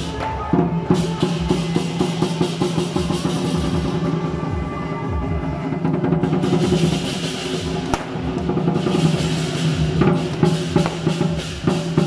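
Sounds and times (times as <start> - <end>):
cymbals clashing: 0.0 - 12.0
barrel drum beating fast: 5.9 - 12.0.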